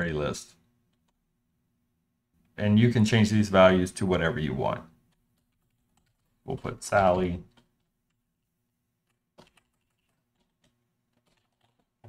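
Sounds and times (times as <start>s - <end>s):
computer keyboard keystrokes: 5.1s - 6.7s, 9.0s - 12.0s.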